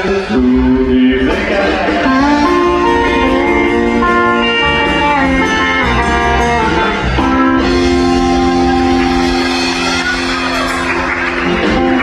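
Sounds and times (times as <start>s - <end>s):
band holding sustained guitar chord: 2.0s - 12.0s.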